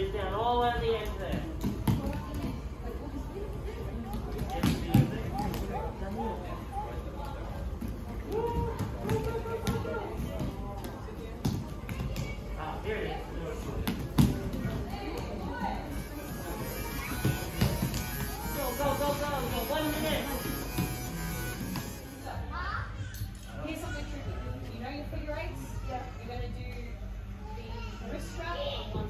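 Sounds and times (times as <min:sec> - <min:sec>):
children's voices and chatter: 0:01.5 - 0:29.0
background music: 0:15.9 - 0:23.4.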